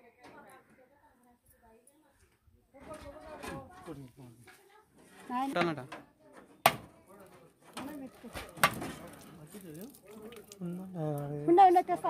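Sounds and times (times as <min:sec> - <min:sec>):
coconut being struck: 0:06.7 - 0:06.9.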